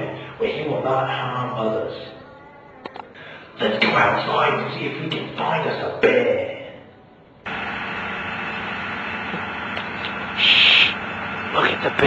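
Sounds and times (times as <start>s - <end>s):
faint low hum: 0.0s - 12.0s
steady hiss: 9.3s - 11.0s.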